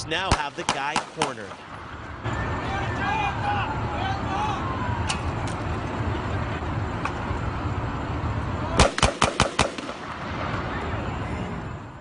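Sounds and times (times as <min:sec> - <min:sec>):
noisy outdoor background: 0:00.0 - 0:12.0
handgun shots: 0:00.3 - 0:01.4, 0:08.8 - 0:10.0.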